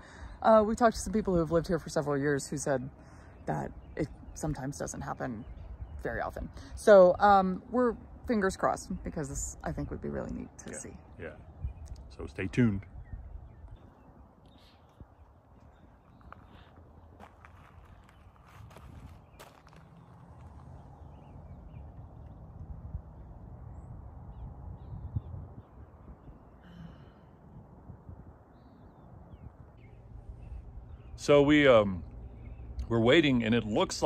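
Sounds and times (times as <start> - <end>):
low steady rumble: 15.1 - 34.0.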